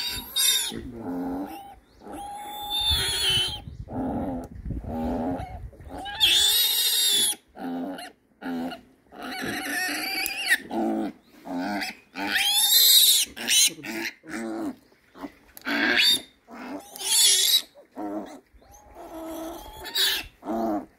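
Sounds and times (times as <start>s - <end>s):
piglet squealing: 0.0s - 0.8s, 1.4s - 3.7s, 5.4s - 7.4s, 9.2s - 10.7s, 11.7s - 14.2s, 15.7s - 20.4s.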